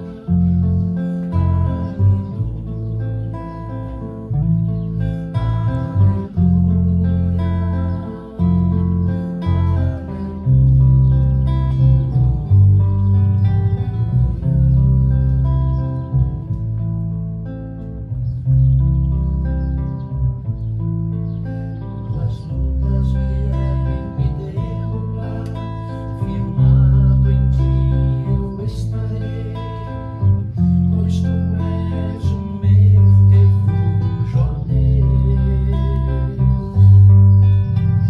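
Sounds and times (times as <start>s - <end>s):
acoustic guitar strumming: 0.0s - 38.0s
electric bass notes: 0.0s - 38.0s.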